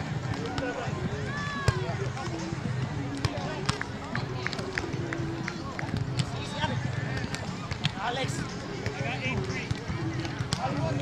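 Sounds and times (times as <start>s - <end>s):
volleyballs being struck: 7.1s - 8.0s, 8.8s - 10.8s.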